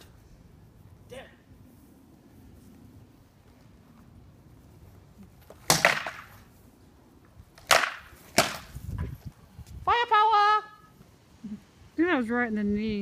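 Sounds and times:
sword blows cracking on shield: 5.6 - 6.3, 7.6 - 8.8.

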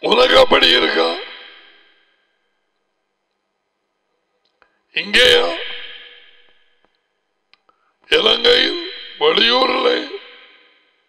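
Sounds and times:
man speaking with echo: 0.0 - 2.0, 4.9 - 6.7, 8.1 - 10.8
faint clicks: 4.4 - 4.8, 6.5 - 7.8.

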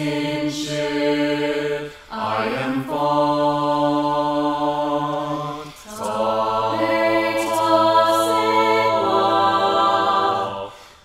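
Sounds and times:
a cappella choir singing hymn: 0.0 - 11.0.

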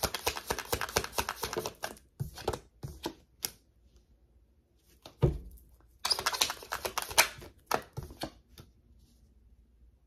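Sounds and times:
cards being shuffled: 0.0 - 3.6, 6.0 - 8.7.

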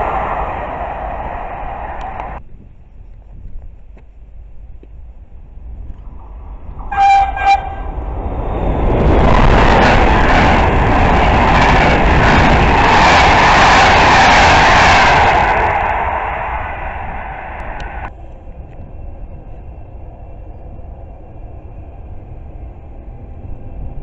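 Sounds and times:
train wheels rushing on rails: 0.0 - 2.4, 5.4 - 24.0
train horn blasts: 6.8 - 8.1.

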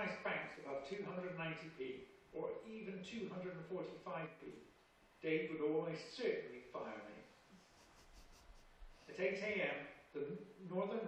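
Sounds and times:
faint soft rustles: 6.9 - 9.4.

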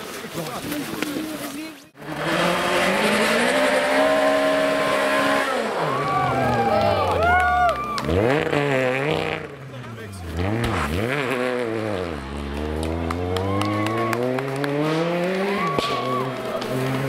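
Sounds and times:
rally car engine revving: 2.0 - 17.0
voices: 9.4 - 11.1.

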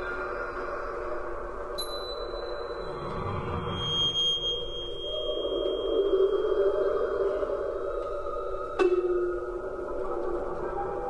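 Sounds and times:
sustained drone-like tones: 0.0 - 11.0.

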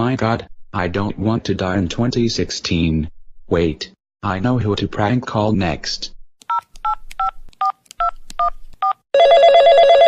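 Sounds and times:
telephone ringing: 9.2 - 10.0.

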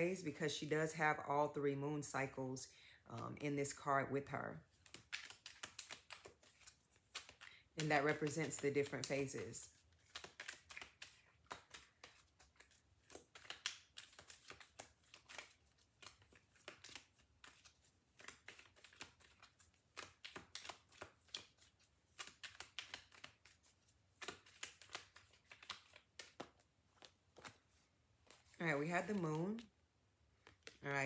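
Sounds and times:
cards being shuffled: 4.7 - 29.7, 30.3 - 30.9.

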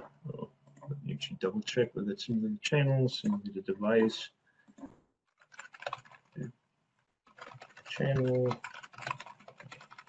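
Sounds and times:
typing on keyboard: 5.4 - 6.4, 7.3 - 10.0.

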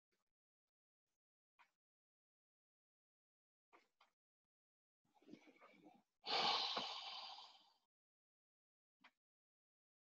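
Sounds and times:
person breathing out loudly: 6.3 - 7.8.

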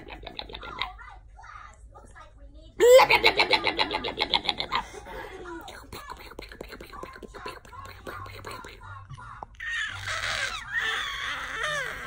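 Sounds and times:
baby squealing happily: 9.6 - 12.0.

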